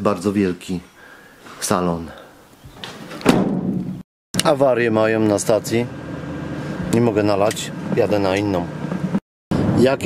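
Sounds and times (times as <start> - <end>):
van door slamming shut: 3.2 - 4.0.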